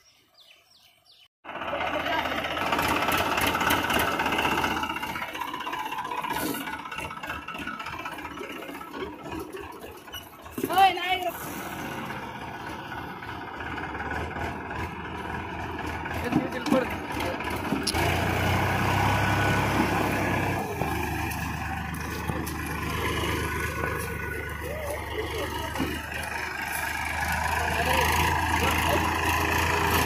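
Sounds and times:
tractor diesel engine humming: 1.5 - 30.0.

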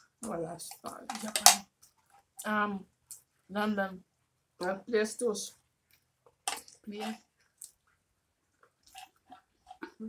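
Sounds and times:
chewing and mouth sounds: 5.9 - 10.0.

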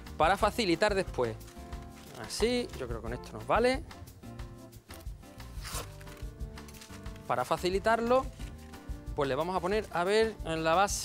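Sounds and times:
soft background music: 0.0 - 11.0
baking paper rustling: 1.5 - 3.0, 5.5 - 8.8.

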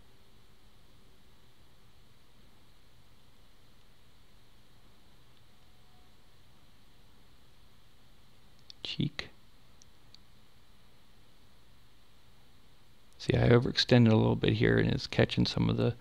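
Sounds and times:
microphone hiss and hum: 0.0 - 16.0.

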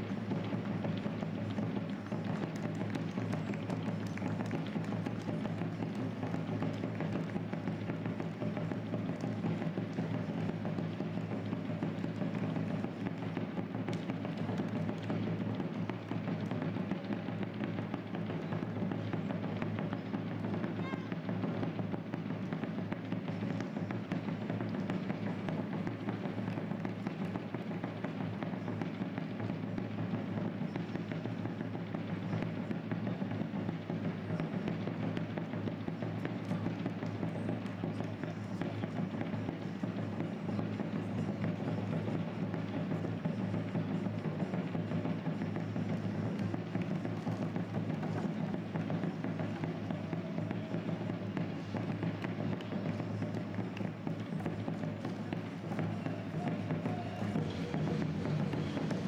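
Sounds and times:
runners' footsteps: 0.0 - 59.0.

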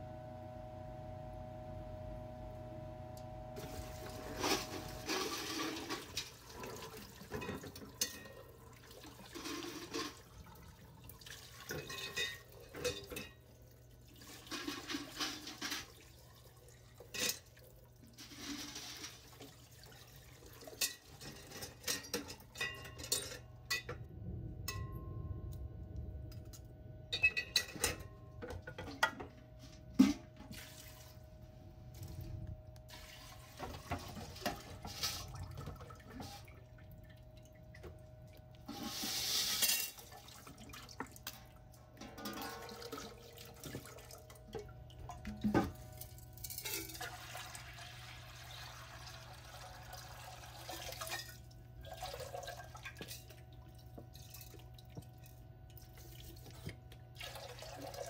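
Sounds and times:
water pouring and splashing: 3.6 - 25.6, 30.0 - 58.0
metal clinking against glass: 27.1 - 28.2
metal granules scraped: 38.7 - 40.0.

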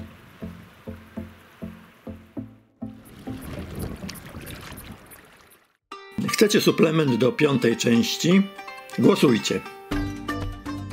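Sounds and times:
wind on microphone: 3.0 - 5.4.

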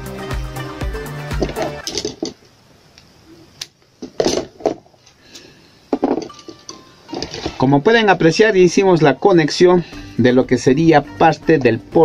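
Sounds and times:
background music: 0.0 - 2.1, 6.0 - 12.0.

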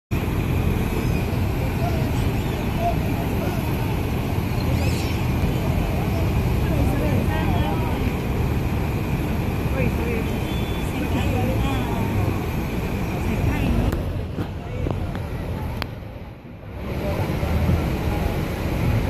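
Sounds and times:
river rushing: 0.2 - 19.0
people talking faintly: 0.9 - 19.0.

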